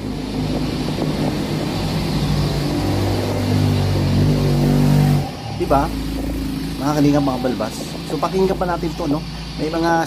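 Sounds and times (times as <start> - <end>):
low motor drone: 0.0 - 10.0.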